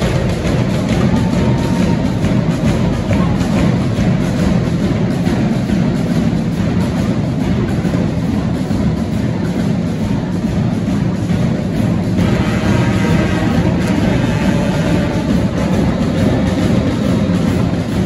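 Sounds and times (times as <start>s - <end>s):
marching band playing: 0.0s - 18.0s.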